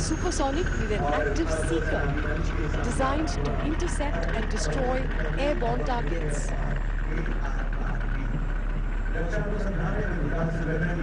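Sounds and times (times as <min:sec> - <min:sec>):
heavy truck engines rumbling: 0:00.0 - 0:11.0.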